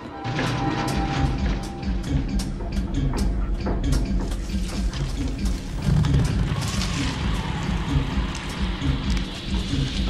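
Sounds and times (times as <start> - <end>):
deep rumble: 4.5 - 10.0.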